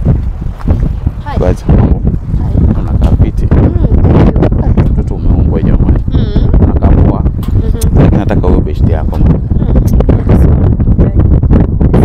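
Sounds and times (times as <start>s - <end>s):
wind rumble on microphone: 0.0s - 12.0s
indistinct voices: 1.2s - 12.0s.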